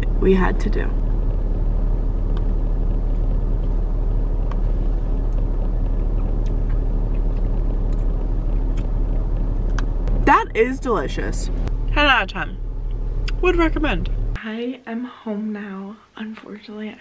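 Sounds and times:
car engine rumble inside cabin: 0.0 - 14.4.

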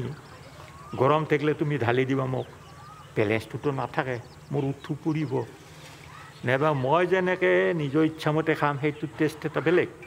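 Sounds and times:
man speaking: 0.9 - 5.6, 6.4 - 10.0.

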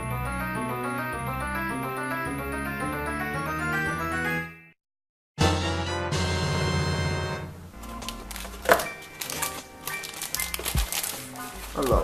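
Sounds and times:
background music: 0.0 - 4.8, 5.4 - 12.0
plastic bag crinkling: 7.8 - 12.0.

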